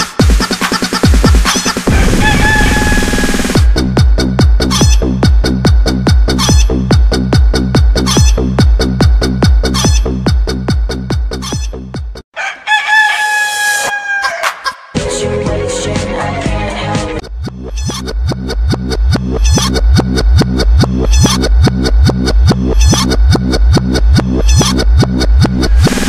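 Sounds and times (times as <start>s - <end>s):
heavy bass pulse: 1.9s - 12.2s, 17.1s - 26.0s.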